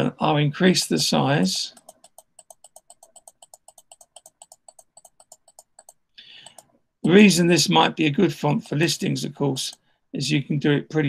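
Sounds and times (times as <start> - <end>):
computer mouse clicking: 1.7 - 7.7, 8.4 - 9.9.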